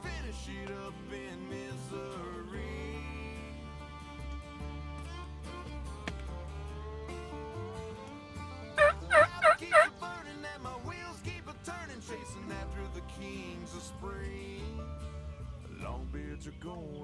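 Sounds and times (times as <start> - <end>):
country music with guitar: 0.0 - 17.0
wild turkey calling: 8.8 - 10.2.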